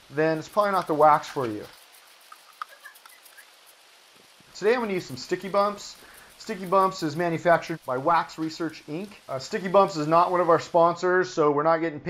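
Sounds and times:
tiny chirps: 0.0 - 11.0.

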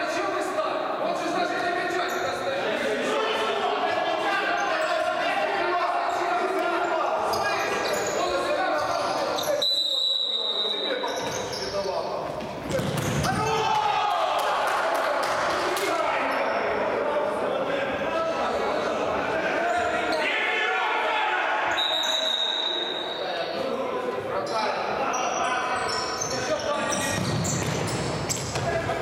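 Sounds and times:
whistle blast: 9.6 - 11.0, 21.7 - 23.4
ball bouncing on hard floor: 12.3 - 13.5, 27.1 - 28.9.

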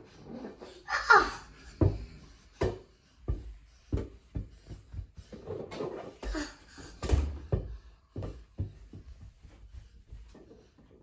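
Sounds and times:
ball bouncing on carpet: 1.7 - 6.3, 7.0 - 10.5.

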